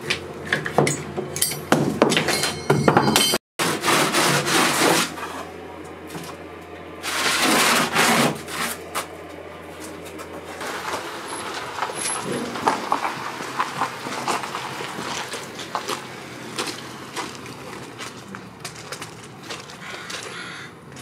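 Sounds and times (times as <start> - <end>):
metal bar clamps clinking: 0.8 - 3.4
sanding block rasping: 3.6 - 5.4.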